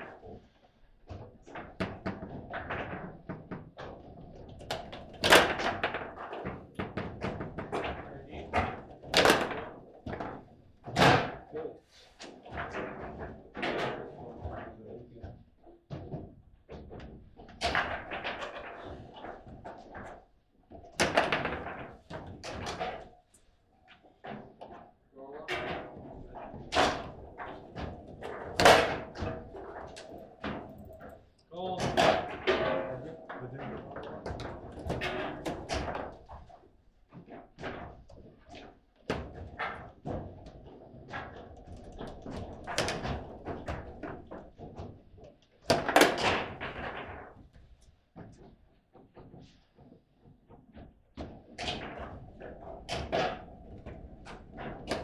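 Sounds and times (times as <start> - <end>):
foosball ball clacking: 25.6 - 36.4.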